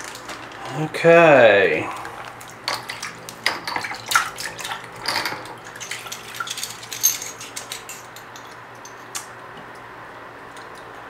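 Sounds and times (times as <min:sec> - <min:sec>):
faint steady hum: 0:00.0 - 0:11.0
liquid splashes: 0:01.8 - 0:06.8
metal parts swishing in liquid: 0:02.0 - 0:08.2
light metal clinks: 0:05.8 - 0:09.1.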